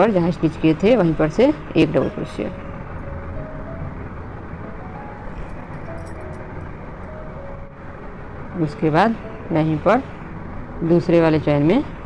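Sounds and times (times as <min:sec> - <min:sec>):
background rumble and hiss: 0:00.0 - 0:12.0
faint tune of held notes: 0:01.7 - 0:10.2.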